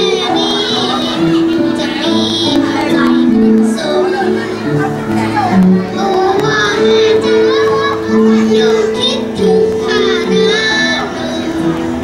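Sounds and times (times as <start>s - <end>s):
backing music track: 0.0s - 12.0s
girl singing into microphone: 0.0s - 12.0s.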